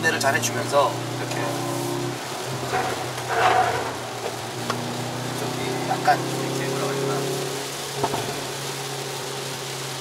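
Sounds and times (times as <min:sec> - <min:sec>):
car engine droning: 0:00.0 - 0:10.0
tyre road and rain hiss: 0:00.0 - 0:10.0.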